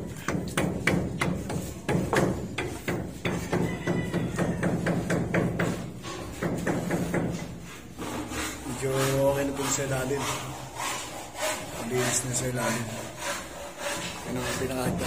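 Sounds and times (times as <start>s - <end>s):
hammer strikes: 0.1s - 8.4s.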